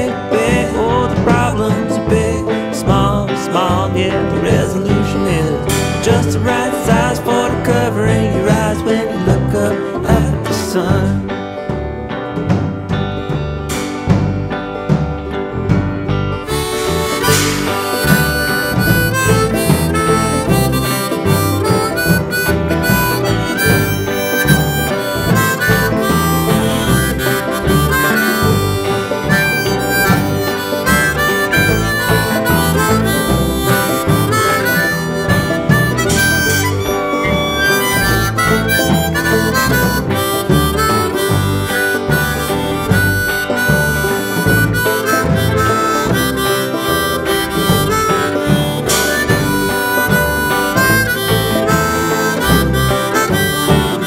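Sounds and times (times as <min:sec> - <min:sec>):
guitar: 0:00.0 - 0:54.0
steady drum beat: 0:00.0 - 0:54.0
harmonica solo: 0:16.3 - 0:54.0.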